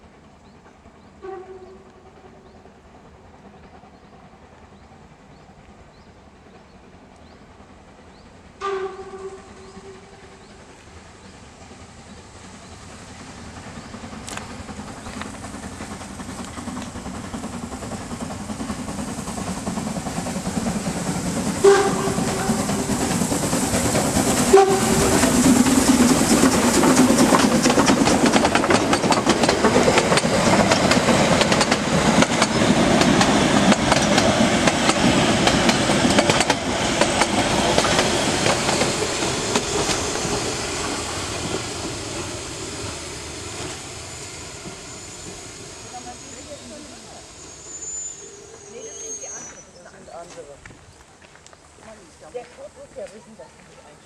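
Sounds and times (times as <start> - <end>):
steam locomotive running: 0.0 - 54.0
steam whistle blasts: 8.6 - 10.3, 21.6 - 23.0, 24.5 - 25.3, 45.0 - 49.8
wheels clicking over rail joints: 12.5 - 42.2.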